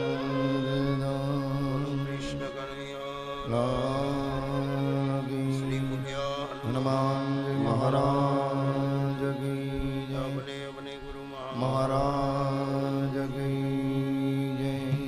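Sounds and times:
mantra chanting: 0:00.0 - 0:15.0.

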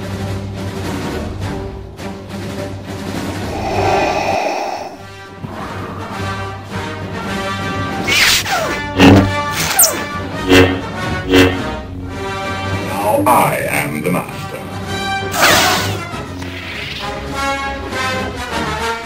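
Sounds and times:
orchestral film score: 0:00.0 - 0:19.0.

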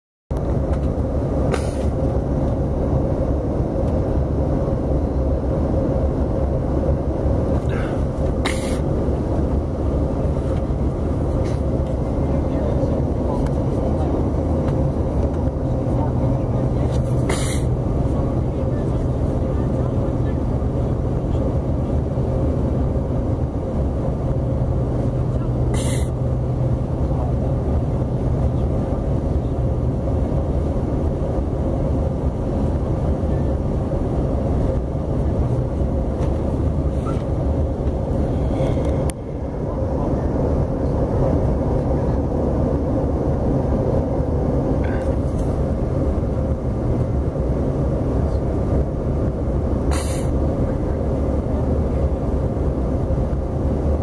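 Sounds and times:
jet engine roar in cabin: 0:00.3 - 0:54.0.

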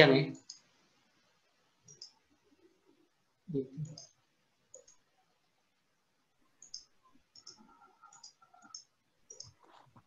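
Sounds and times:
faint computer clicks: 0:00.3 - 0:00.7, 0:01.8 - 0:02.2, 0:03.8 - 0:05.1, 0:06.6 - 0:10.0.

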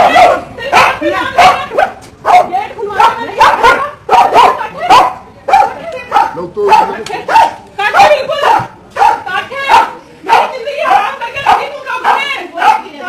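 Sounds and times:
dog barking: 0:00.0 - 0:13.0
people's voices: 0:00.0 - 0:13.0.

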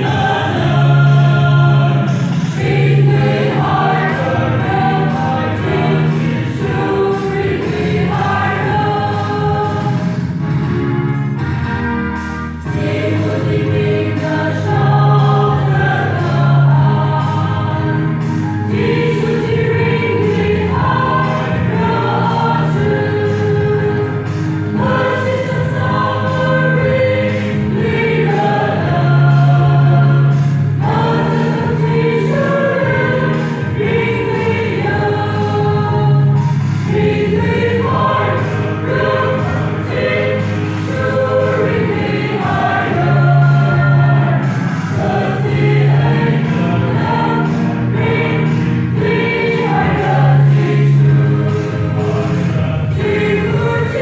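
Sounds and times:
women's choir singing: 0:00.0 - 0:10.2, 0:12.7 - 0:54.0.

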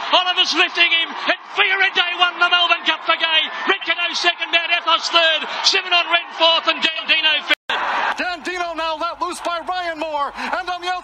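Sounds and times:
man giving excited race commentary: 0:00.0 - 0:11.0.

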